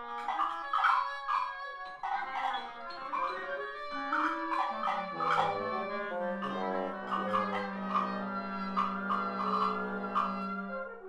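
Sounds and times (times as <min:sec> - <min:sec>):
chamber ensemble playing modernist music: 0:00.1 - 0:11.0.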